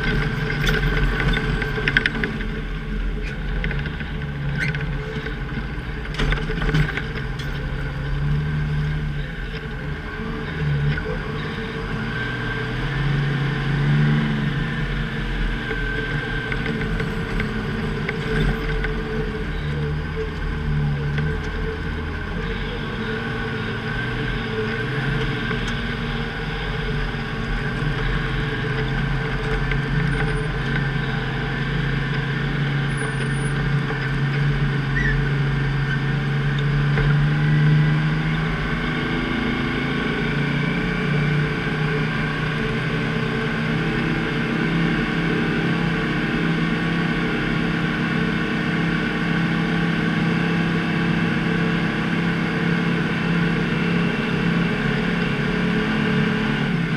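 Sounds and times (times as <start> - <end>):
diesel truck engine running: 0.0 - 56.9.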